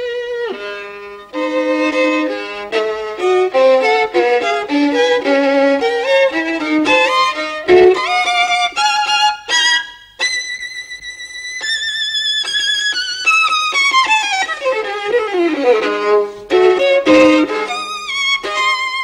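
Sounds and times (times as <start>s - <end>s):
solo violin melody: 0.0s - 19.0s.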